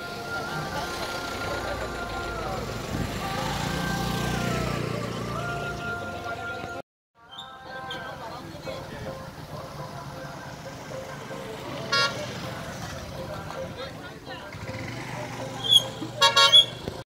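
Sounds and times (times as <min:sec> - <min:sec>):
background voices: 0:00.0 - 0:16.2
street traffic: 0:00.0 - 0:17.0
vehicle horn tooting: 0:11.9 - 0:12.3, 0:15.6 - 0:16.9.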